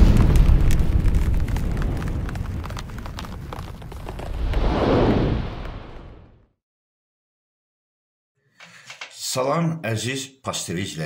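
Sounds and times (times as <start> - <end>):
deep crackling rumble: 0.0 - 6.5
whoosh: 4.1 - 6.5.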